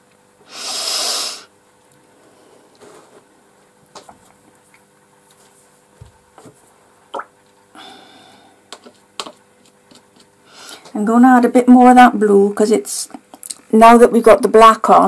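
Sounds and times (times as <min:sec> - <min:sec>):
loud breath close to microphone: 0:00.4 - 0:01.5, 0:07.8 - 0:08.6, 0:10.4 - 0:10.9
faint clicks and taps: 0:08.7 - 0:11.0.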